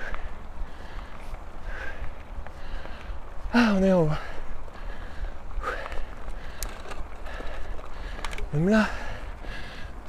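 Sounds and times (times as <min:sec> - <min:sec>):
tyre and wind rumble: 0:00.0 - 0:10.0.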